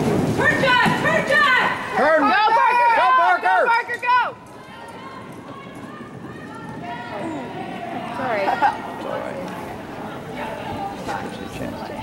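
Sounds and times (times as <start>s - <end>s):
horse hoofbeats on dirt: 0.0s - 10.9s.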